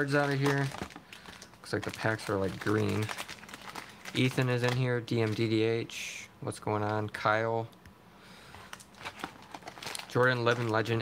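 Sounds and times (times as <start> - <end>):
plastic wrappers crinkling: 0.0 - 5.8, 8.4 - 11.0.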